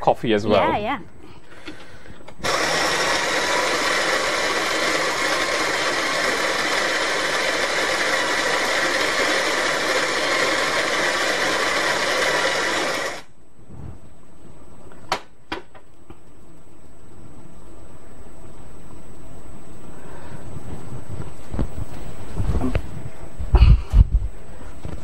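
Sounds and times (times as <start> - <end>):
electric coffee grinder grinding: 2.4 - 13.3.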